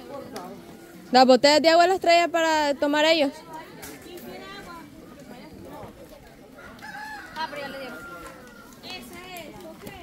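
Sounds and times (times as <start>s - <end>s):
low background chatter: 3.2s - 10.0s
rooster crowing: 6.6s - 8.8s.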